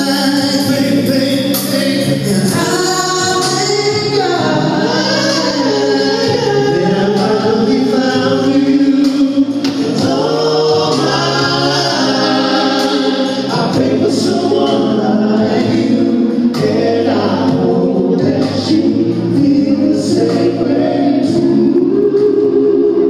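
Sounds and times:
male vocal group singing in harmony: 0.0 - 23.0.

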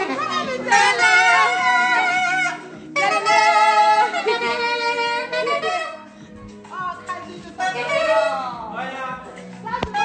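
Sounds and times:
saxophone melody: 0.0 - 8.7, 9.7 - 10.0.

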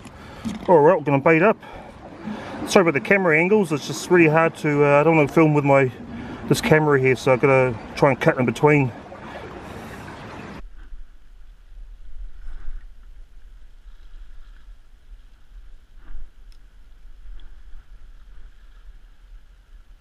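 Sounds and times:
water lapping against rocks: 0.0 - 11.2
wind rumble on microphone: 10.4 - 20.0.

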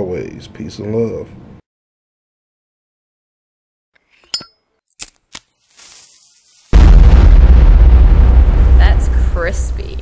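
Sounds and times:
loud deep boom: 6.8 - 10.0.

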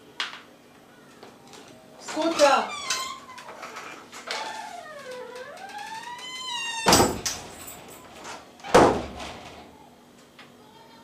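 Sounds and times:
door hinge squealing: 2.2 - 7.4
door thuds: 6.5 - 7.6, 8.6 - 9.7.

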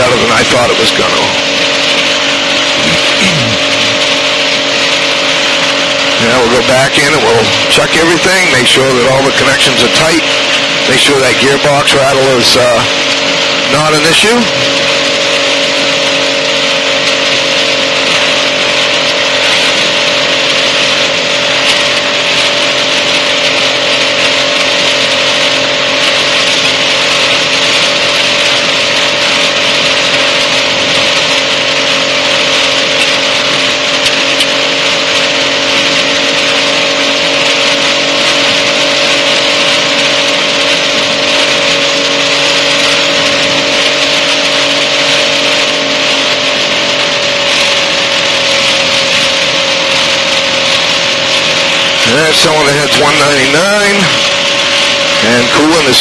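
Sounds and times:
ultralight aircraft engine and propeller: 0.0 - 56.0.

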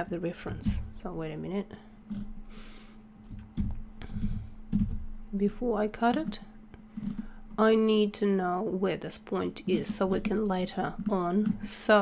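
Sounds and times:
faint steady hum: 0.0 - 12.0
computer keyboard keystrokes: 3.2 - 5.1.

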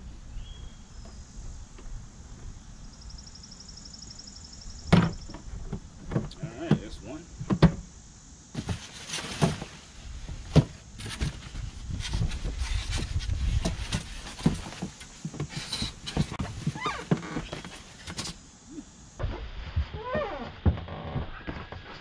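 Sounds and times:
foam wrap and cardboard rustling: 8.5 - 18.4.

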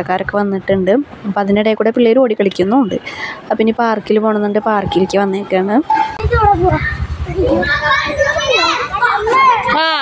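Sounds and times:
children shouting as they play: 6.1 - 10.0.

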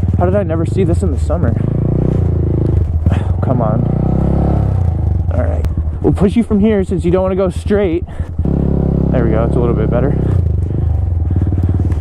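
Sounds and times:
motorcycle engine chugging: 0.0 - 12.0.

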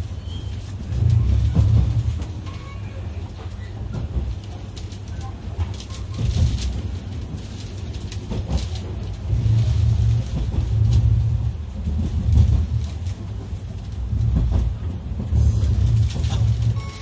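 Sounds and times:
train bogies and motors rumbling: 0.0 - 17.0
wheels clicking on rails: 0.0 - 17.0.

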